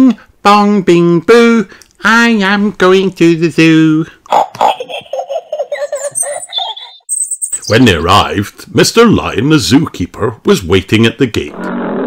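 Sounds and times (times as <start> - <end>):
person giggling: 4.4 - 7.0.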